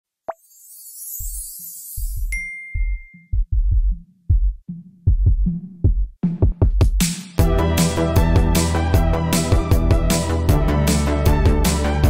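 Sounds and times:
deep bass beat: 0:02.0 - 0:12.0.

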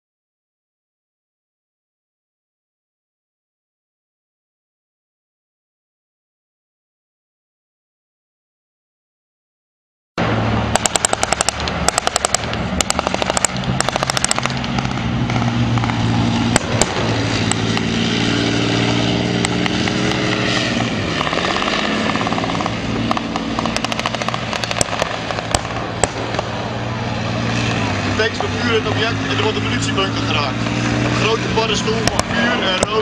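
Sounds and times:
tank diesel engines droning: 0:10.2 - 0:33.0
automatic gunfire bursts: 0:10.8 - 0:14.6.

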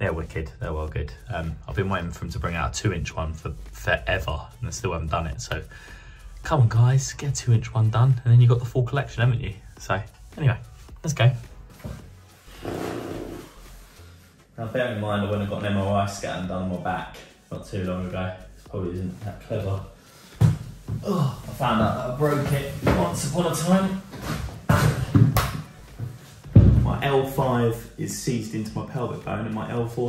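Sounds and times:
man groaning: 0:21.0 - 0:21.5.

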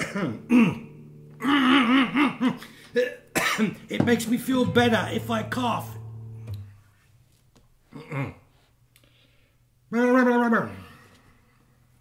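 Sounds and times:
guitar strings ringing: 0:00.0 - 0:07.7
string damping click: 0:03.8 - 0:07.4.

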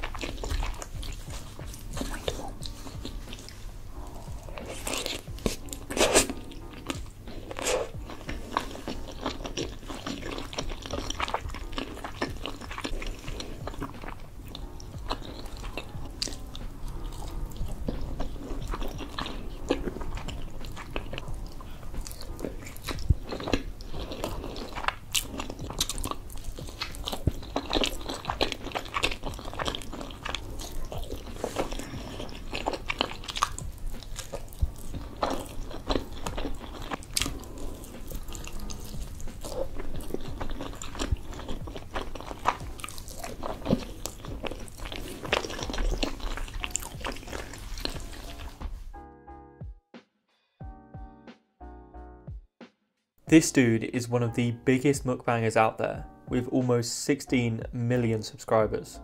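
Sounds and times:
person chewing food: 0:00.0 - 0:48.9.

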